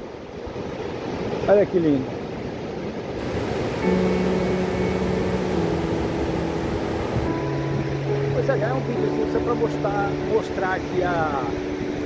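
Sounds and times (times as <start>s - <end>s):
surf on beach: 0.0s - 12.0s
wind on microphone: 2.5s - 8.3s.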